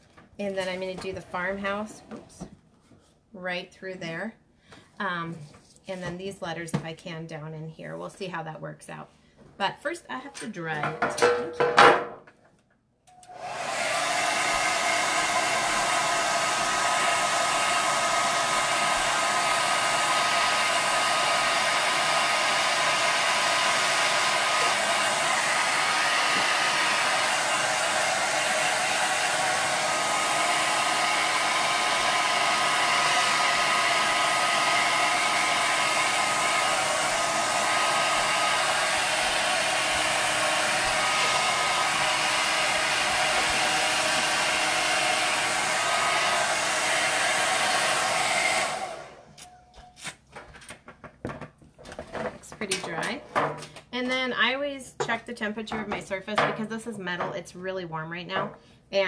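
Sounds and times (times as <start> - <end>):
hair dryer running: 13.1 - 49.5.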